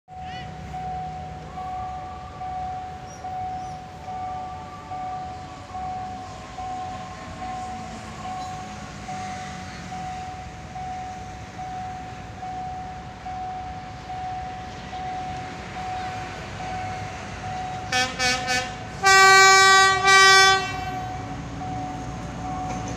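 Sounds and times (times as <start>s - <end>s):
train horn: 17.9s - 21.2s.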